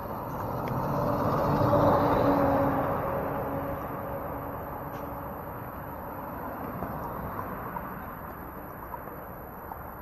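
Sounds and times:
vehicle engine passing by: 0:00.0 - 0:04.6.

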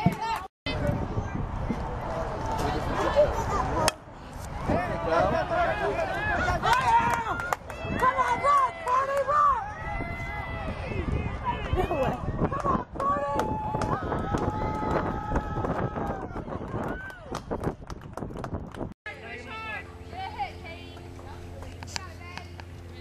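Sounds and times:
people shouting and cheering: 0:04.5 - 0:17.4.

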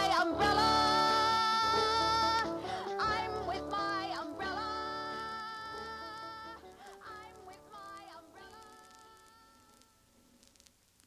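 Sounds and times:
song chord on old record: 0:00.0 - 0:09.6
record surface hiss: 0:00.0 - 0:11.0
record clicks: 0:06.6 - 0:11.0.

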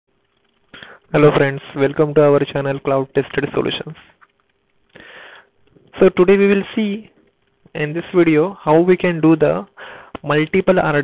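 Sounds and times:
person breathing in: 0:00.7 - 0:01.1, 0:04.9 - 0:05.6, 0:09.8 - 0:10.2.

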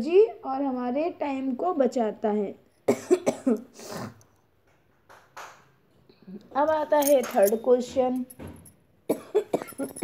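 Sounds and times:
person coughing: 0:02.9 - 0:04.2, 0:09.1 - 0:10.0.

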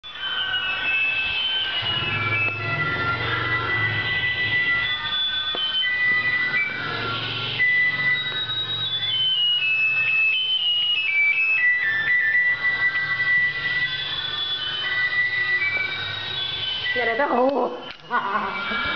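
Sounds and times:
electronic beeping jingle: 0:00.0 - 0:18.9
low hum: 0:01.2 - 0:10.1.

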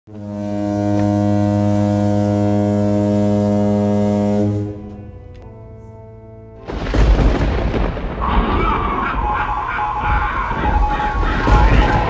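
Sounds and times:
deep horn-like drone: 0:00.1 - 0:07.0.

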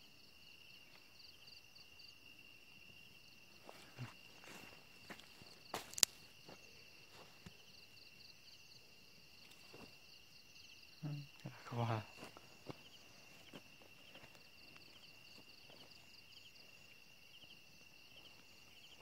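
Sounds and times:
night insects trilling: 0:00.0 - 0:19.0
soft steps and rustles in grass: 0:03.6 - 0:07.6.

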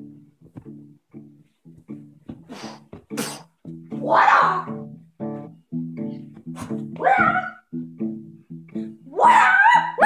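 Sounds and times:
guitar and bass riff: 0:00.0 - 0:10.0
shrill yell: 0:04.0 - 0:04.8, 0:07.0 - 0:07.7, 0:09.1 - 0:10.0.

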